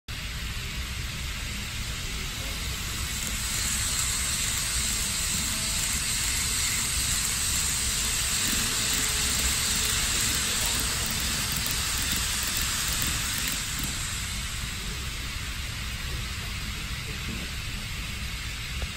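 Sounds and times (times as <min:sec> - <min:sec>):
model trains running on track: 0:00.1 - 0:18.9.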